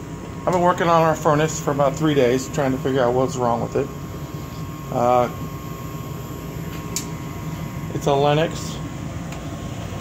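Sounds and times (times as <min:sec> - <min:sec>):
fan motor humming: 0:00.0 - 0:10.0.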